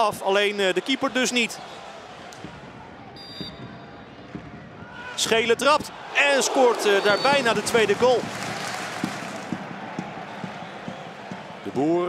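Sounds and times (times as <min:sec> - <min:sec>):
stadium crowd hubbub: 0:00.0 - 0:12.0.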